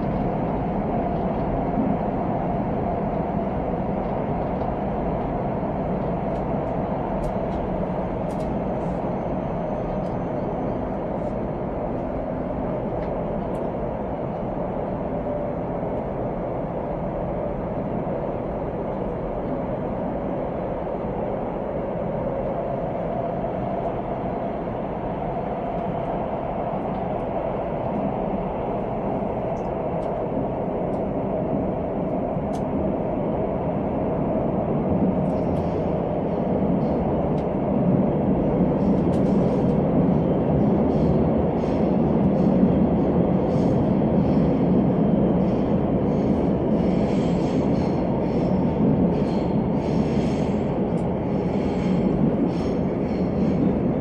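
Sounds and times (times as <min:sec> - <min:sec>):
train wheels rumble and hum: 0:00.0 - 0:54.0.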